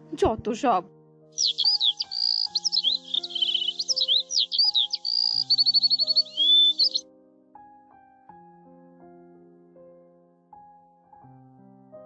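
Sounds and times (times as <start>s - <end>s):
soft piano music: 0.0s - 12.0s
songbird chirps and whistles: 1.4s - 7.0s.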